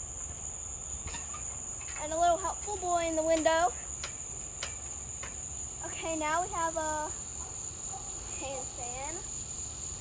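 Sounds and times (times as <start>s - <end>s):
crickets trilling: 0.0s - 10.0s.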